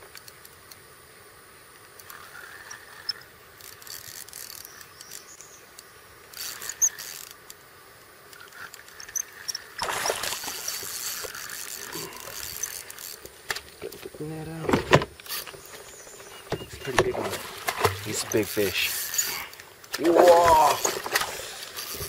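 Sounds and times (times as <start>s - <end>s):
faint clicks: 0.0s - 0.8s, 1.7s - 9.8s
water splashing against kayak: 9.8s - 13.0s, 15.5s - 22.0s.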